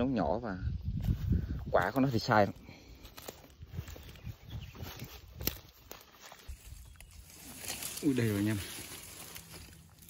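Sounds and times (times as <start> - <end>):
footsteps through grass: 0.8 - 10.0
plants brushing: 1.0 - 10.0.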